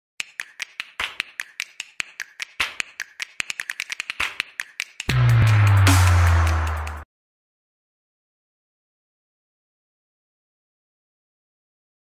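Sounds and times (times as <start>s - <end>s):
rapid snapping clicks: 0.2s - 5.2s.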